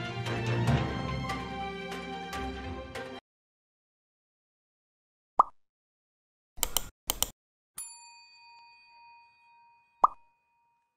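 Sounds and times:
bell ding: 7.8s - 10.9s.

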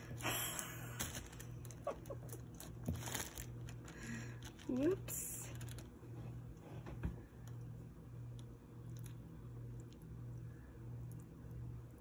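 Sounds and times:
low pulsing hum: 0.0s - 12.0s.

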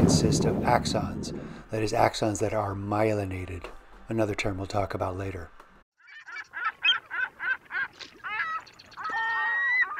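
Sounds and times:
bird calling rapidly: 6.0s - 9.9s.

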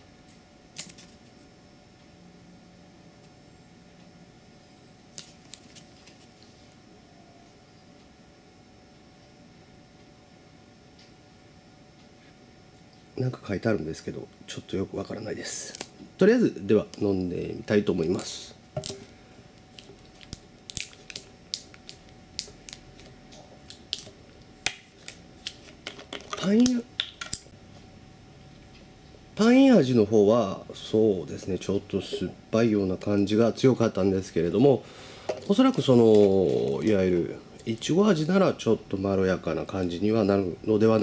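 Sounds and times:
plastic bottle crackling: 19.7s - 27.4s, 35.3s - 37.0s.

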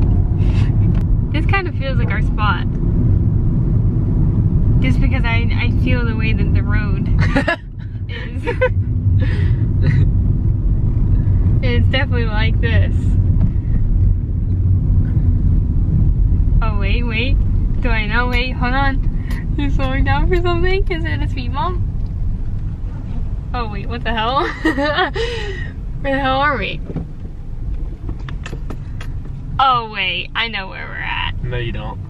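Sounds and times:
car rumble inside cabin: 0.0s - 32.0s.

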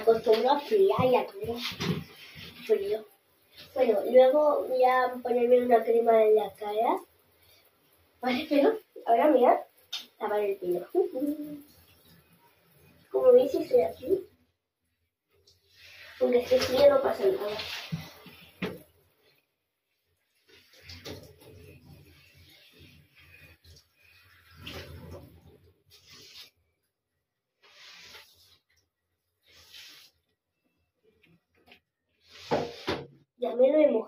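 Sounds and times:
water splashing: 15.4s - 19.0s, 20.1s - 26.6s.

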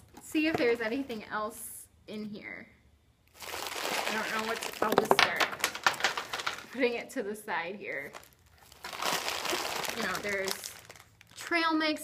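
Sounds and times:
plastic packets crinkling: 3.3s - 6.8s, 8.0s - 11.5s.

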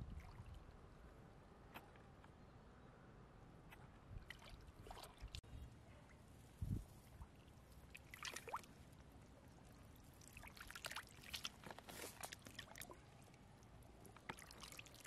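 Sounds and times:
muddy water splashing: 4.2s - 5.5s, 7.0s - 15.0s.

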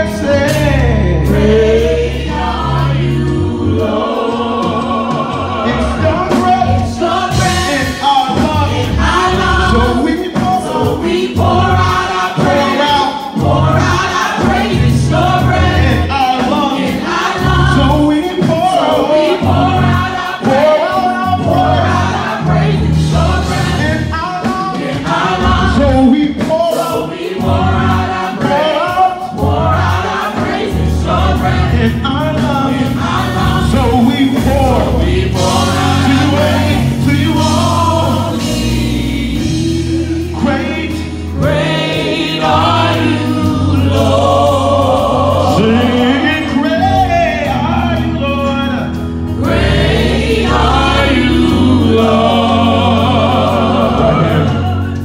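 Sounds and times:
backing singers: 0.0s - 48.2s, 48.9s - 55.0s
instrumental accompaniment: 0.0s - 55.0s
man singing lead: 45.1s - 48.9s.

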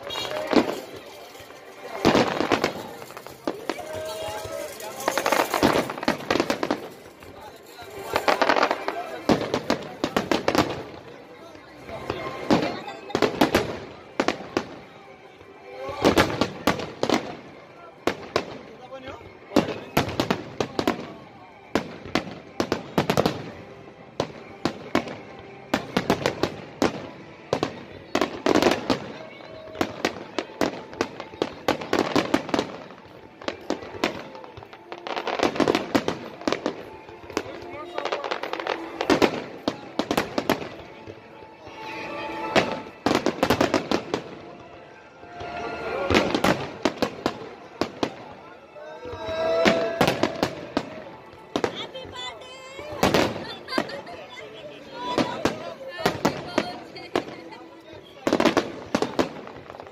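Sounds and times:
fireworks bangs and crackling: 0.0s - 41.5s, 42.3s - 59.9s.

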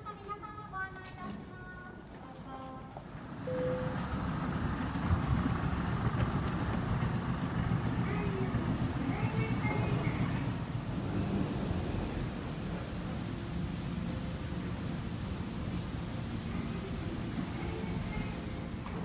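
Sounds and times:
low rumble of terminal ambience: 0.0s - 19.0s.

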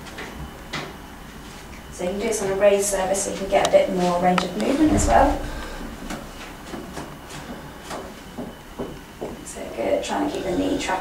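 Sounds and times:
low hum: 4.6s - 6.5s.

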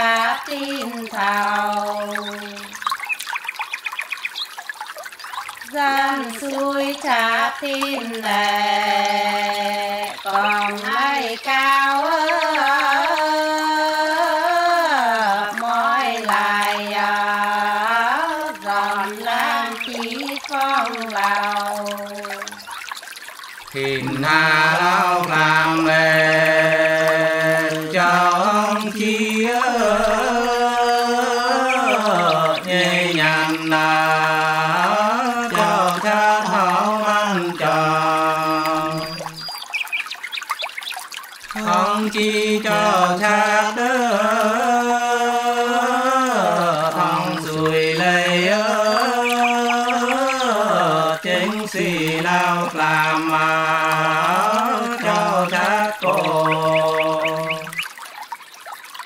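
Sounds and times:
unaccompanied folk singing: 0.0s - 2.8s, 5.7s - 22.8s, 23.7s - 39.5s, 41.5s - 57.8s.

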